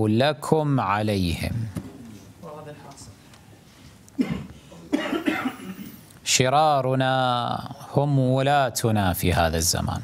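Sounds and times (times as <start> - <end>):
man coughing: 4.2 - 6.0.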